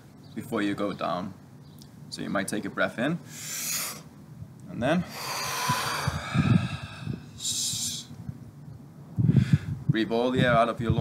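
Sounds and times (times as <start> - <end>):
man exhaling hard: 3.3 - 4.1, 5.0 - 8.1, 9.3 - 9.8.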